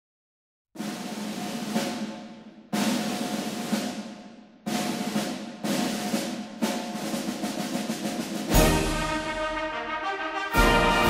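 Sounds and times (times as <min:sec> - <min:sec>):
drum rolls: 0:00.8 - 0:11.0.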